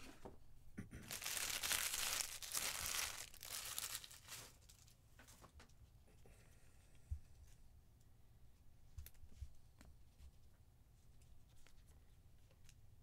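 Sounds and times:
foil wrapper crinkling and tearing: 1.1s - 4.8s
cards and plastic rustling: 1.1s - 5.5s.

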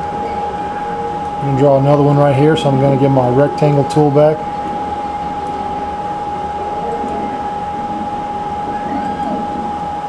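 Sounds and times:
background hum: 0.0s - 10.0s
high-pitched whine: 0.0s - 10.0s.

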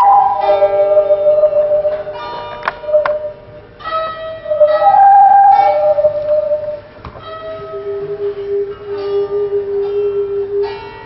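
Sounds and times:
plucked string instrument: 0.0s - 11.0s
whirled instrument ringing tones: 0.0s - 11.0s.

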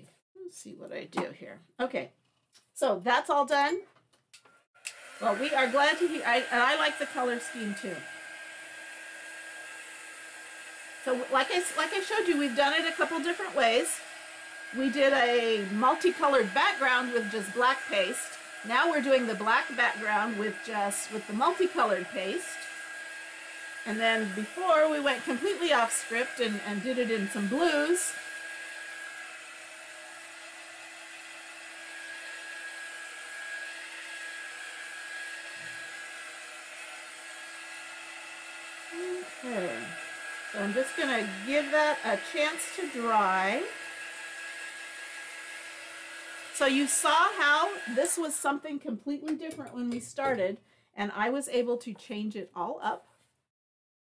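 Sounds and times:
heat tool blowing: 4.8s - 48.7s.

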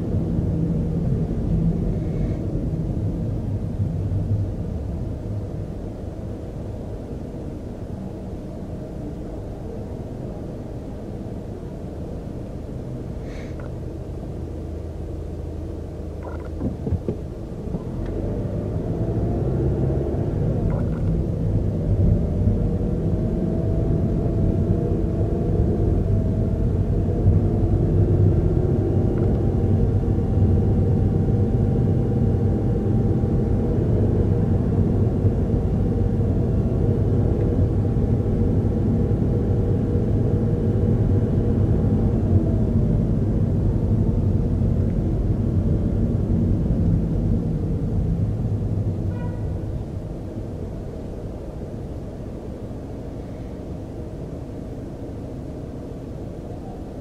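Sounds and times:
car driving rumble: 0.0s - 8.3s, 9.1s - 57.0s
faint whine: 0.0s - 19.0s, 19.7s - 57.0s.

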